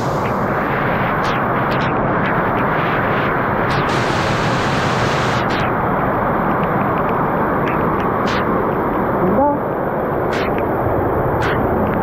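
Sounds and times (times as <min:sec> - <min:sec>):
heavy rain pouring: 0:00.0 - 0:06.6.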